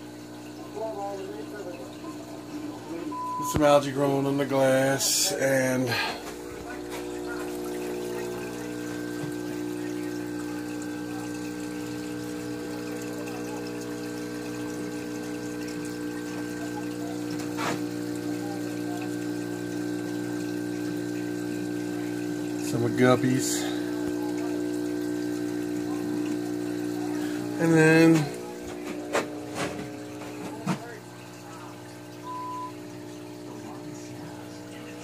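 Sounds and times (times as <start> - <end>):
aquarium pump hum: 0.0 - 35.0
water trickling: 0.0 - 35.0.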